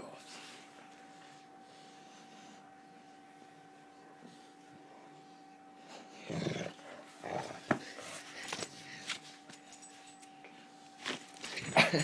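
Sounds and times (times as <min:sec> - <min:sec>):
dog growling: 0:06.0 - 0:07.9.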